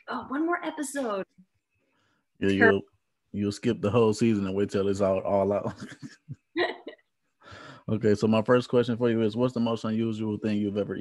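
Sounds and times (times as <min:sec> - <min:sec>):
person speaking: 0:02.4 - 0:02.8, 0:03.4 - 0:06.9, 0:07.8 - 0:11.0
person laughing: 0:02.5 - 0:02.8, 0:05.3 - 0:07.0.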